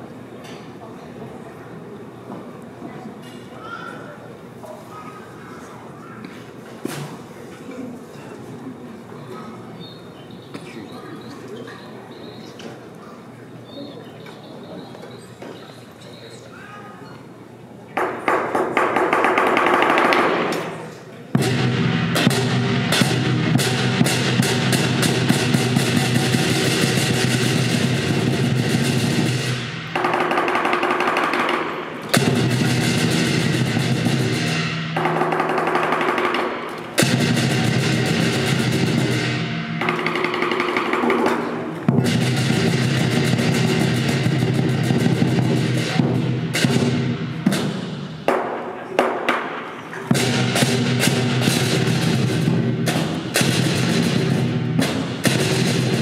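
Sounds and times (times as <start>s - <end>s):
cymbals crashing: 20.7s - 48.3s, 49.6s - 56.0s
drum beating fast rolls: 21.3s - 48.3s, 50.1s - 56.0s.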